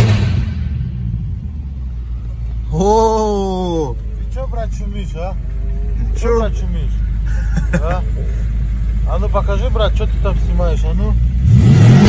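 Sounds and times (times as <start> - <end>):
low rumble of cars: 0.0 - 12.0
man talking: 2.7 - 11.2.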